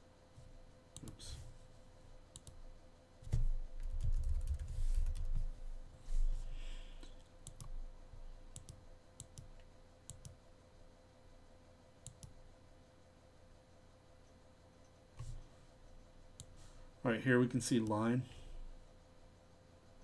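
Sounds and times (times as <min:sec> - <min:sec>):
thin steady hum: 0:00.0 - 0:20.0
faint computer mouse clicks: 0:02.3 - 0:02.6, 0:07.0 - 0:07.8, 0:08.5 - 0:10.4, 0:12.0 - 0:12.4.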